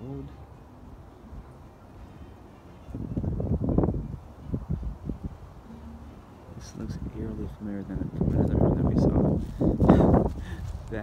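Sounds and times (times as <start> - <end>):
wind buffeting microphone: 2.8 - 5.7, 6.5 - 11.0.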